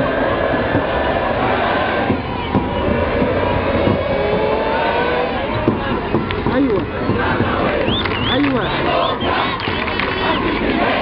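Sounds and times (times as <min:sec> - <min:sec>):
crowd shouting and chanting: 0:00.0 - 0:11.0.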